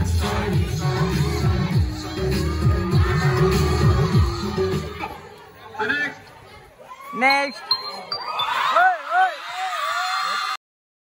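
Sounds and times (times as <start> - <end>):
music: 0.0 - 5.3
crowd murmur: 0.0 - 9.9
voices calling out: 0.3 - 10.5.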